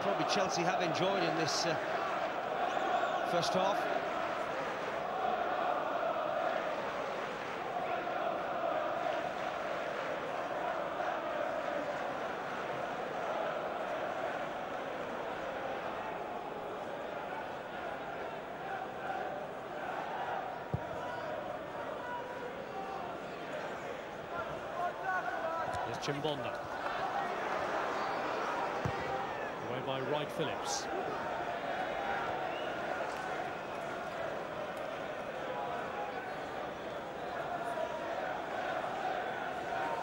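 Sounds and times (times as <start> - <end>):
stadium crowd chanting: 0.0 - 40.0.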